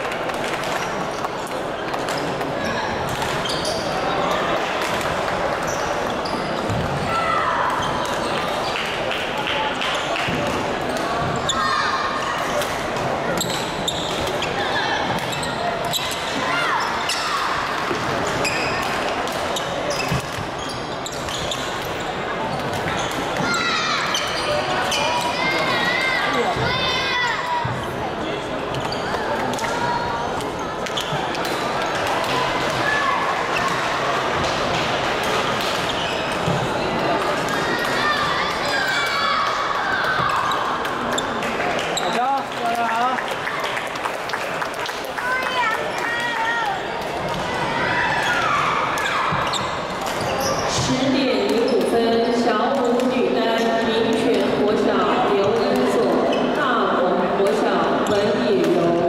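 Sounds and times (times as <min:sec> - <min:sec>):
chatter of many voices: 0:00.0 - 0:59.0.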